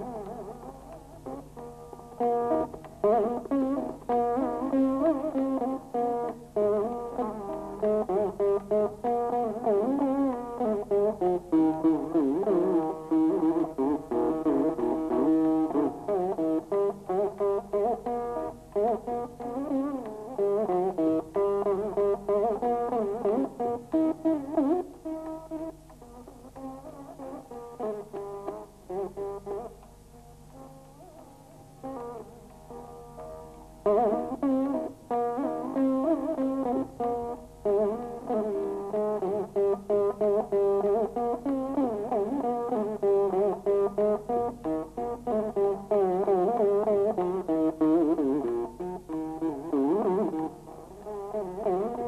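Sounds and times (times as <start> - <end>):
veena plucked notes with pitch bends: 0.0 - 52.0.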